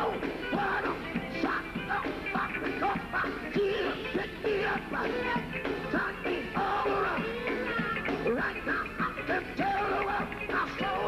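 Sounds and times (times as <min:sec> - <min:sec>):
gospel band playing: 0:00.0 - 0:11.0
person singing into a microphone: 0:00.0 - 0:11.0.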